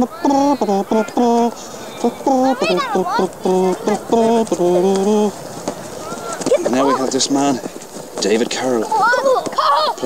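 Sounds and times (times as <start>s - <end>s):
person humming or chanting: 0.0s - 5.4s.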